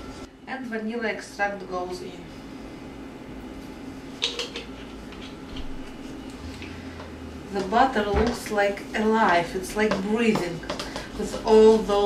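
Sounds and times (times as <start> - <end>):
kitchen room hum: 0.0 - 12.0.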